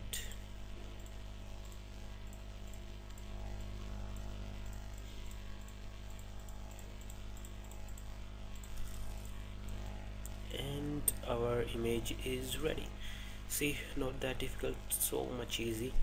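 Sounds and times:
low electrical hum: 0.0 - 16.0
faint ticks: 0.2 - 10.5
background hiss: 8.6 - 16.0.

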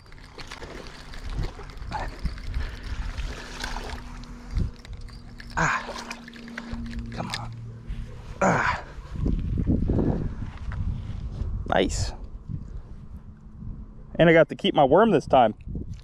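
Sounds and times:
fish splashing in water: 0.0 - 4.6
fishing reel cranking: 0.0 - 7.6.

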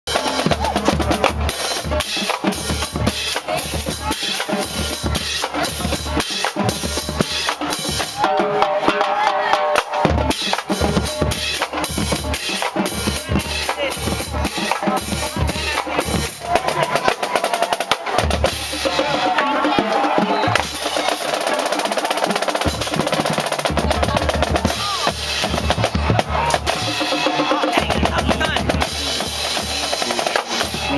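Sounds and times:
bass drums: 0.1 - 8.3, 10.0 - 21.2, 22.6 - 30.9
snare drums: 0.1 - 30.9.

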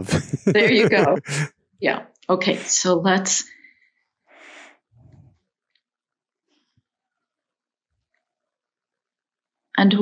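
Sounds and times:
soft breath: 3.5 - 5.4.

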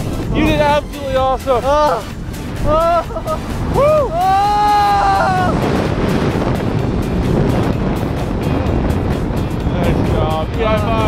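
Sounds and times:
wind rushing on microphone: 0.0 - 11.0
person whooping excitedly: 2.7 - 5.6.

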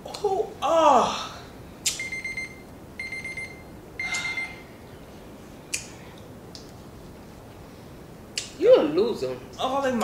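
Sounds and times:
high buzzy timer beeps: 2.0 - 4.6.

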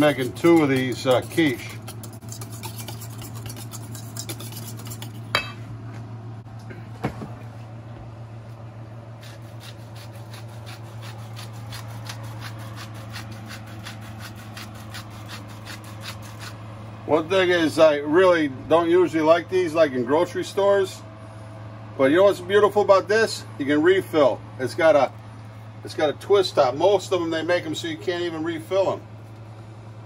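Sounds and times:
whisk clicking against metal bowl: 0.0 - 5.2.

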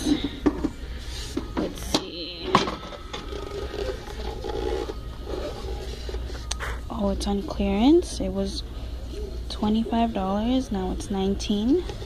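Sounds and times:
steady low hum: 0.0 - 12.0
box rubbing and scraping: 3.1 - 6.9.

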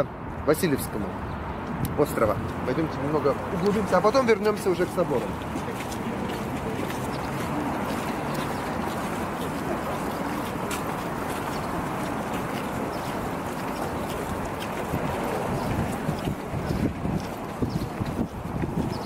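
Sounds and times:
street noise: 0.0 - 19.0
footsteps on stone paving: 1.6 - 19.0.

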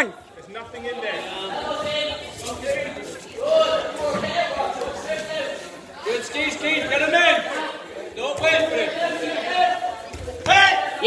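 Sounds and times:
man talking in large hall: 0.0 - 11.0.

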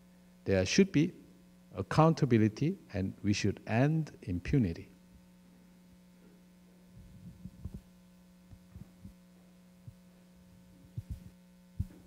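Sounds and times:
low electrical hum: 0.0 - 12.0
soft low thumps: 7.0 - 7.9, 8.5 - 9.2, 10.8 - 12.0.

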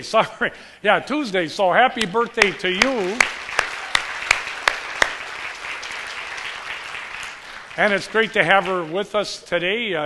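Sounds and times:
loud single claps: 2.0 - 7.8
congregation applauding: 2.3 - 9.3.

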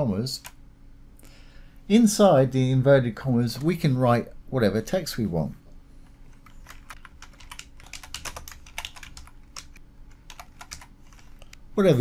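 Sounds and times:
typing on computer keyboard: 6.6 - 11.5.

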